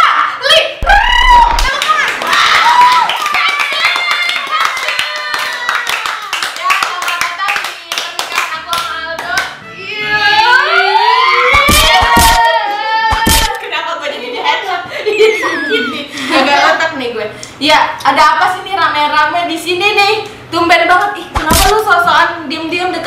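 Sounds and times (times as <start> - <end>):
excited voices: 0.0 - 6.4, 9.8 - 16.9
people clapping: 1.2 - 9.6
laughter: 13.6 - 16.8.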